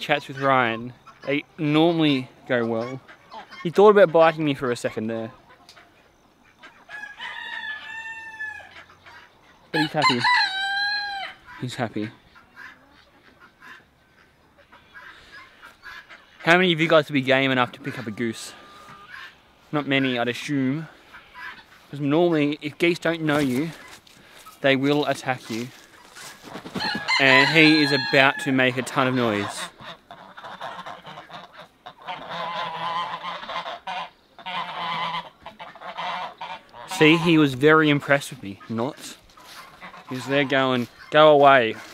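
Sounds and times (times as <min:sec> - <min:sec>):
chickens clucking: 0:00.0 - 0:41.9
goose calling: 0:00.0 - 0:41.9.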